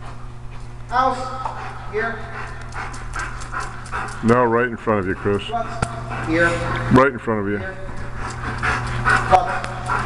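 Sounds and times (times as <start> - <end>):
steady low hum: 0.0 - 10.0
dog panting: 1.3 - 10.0.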